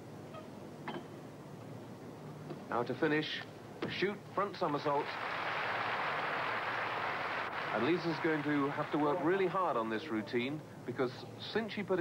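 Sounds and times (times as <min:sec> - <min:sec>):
faint background hiss and hum: 0:00.0 - 0:12.0.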